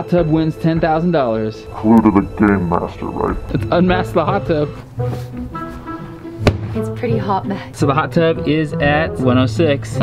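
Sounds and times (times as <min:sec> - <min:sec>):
background music: 0:00.0 - 0:10.0
foam cover thud: 0:06.4 - 0:06.8.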